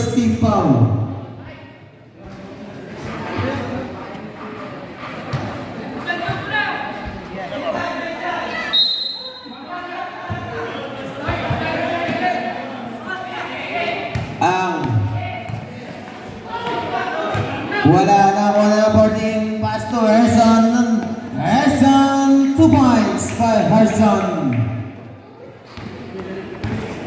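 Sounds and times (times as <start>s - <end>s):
basketball bouncing on hard court: 14.1s - 15.7s, 25.8s - 26.9s.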